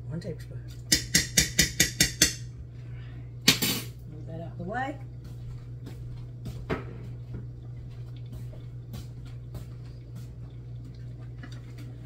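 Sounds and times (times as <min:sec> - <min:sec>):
spoon tapping metal pot: 0:00.9 - 0:02.5.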